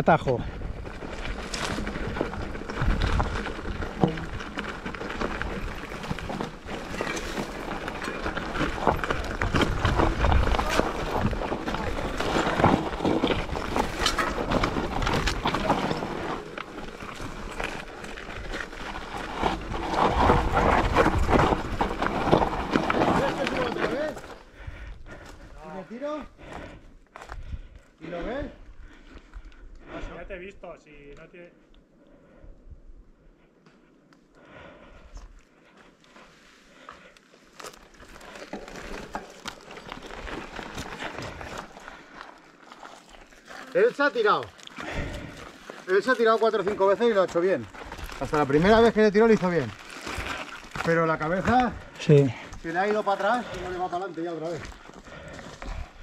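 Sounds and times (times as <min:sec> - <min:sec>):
tyres crunching over stones: 0:00.0 - 0:27.5, 0:36.1 - 0:56.0
bike and chain rattling: 0:00.2 - 0:24.4, 0:37.6 - 0:56.0.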